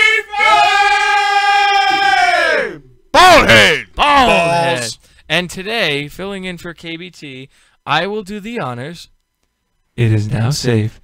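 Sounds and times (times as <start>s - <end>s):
men bellowing a sung note: 0.0s - 5.0s.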